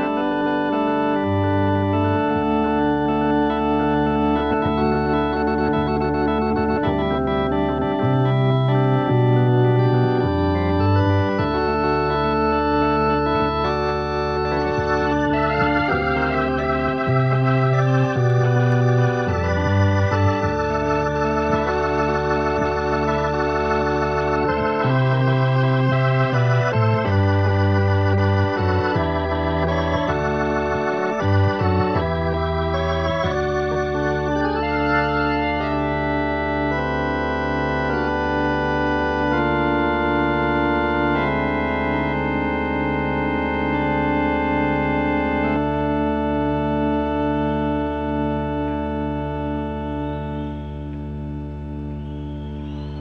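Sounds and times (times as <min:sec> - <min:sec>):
organ playing sustained chords: 0:00.0 - 0:53.0.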